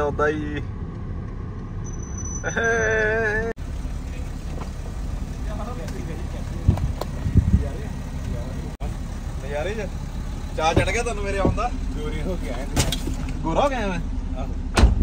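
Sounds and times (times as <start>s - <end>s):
car rumbling: 0.0s - 15.0s
dull thumps: 10.7s - 11.8s.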